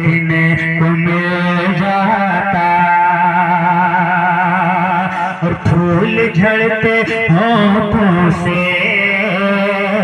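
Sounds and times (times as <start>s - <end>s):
man singing with vibrato: 0.0s - 10.0s.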